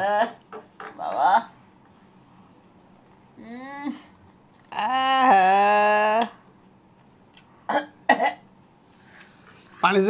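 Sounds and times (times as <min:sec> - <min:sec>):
woman wailing cry: 0:04.7 - 0:06.3.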